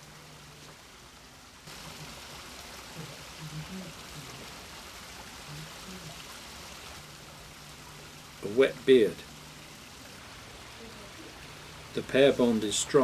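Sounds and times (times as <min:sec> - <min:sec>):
running water hissing: 0:00.0 - 0:13.0.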